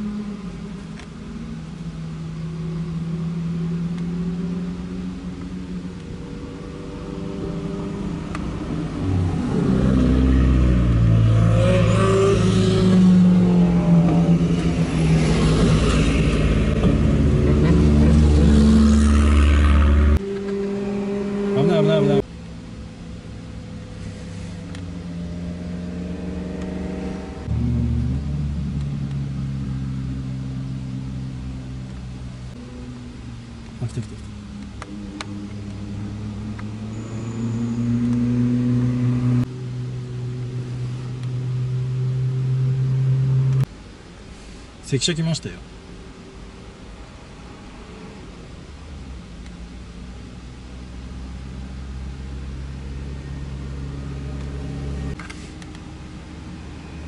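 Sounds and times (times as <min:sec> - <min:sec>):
car engines passing: 0:00.0 - 0:57.0
car engine revving loudly: 0:02.4 - 0:22.3, 0:23.8 - 0:32.7, 0:33.5 - 0:43.7.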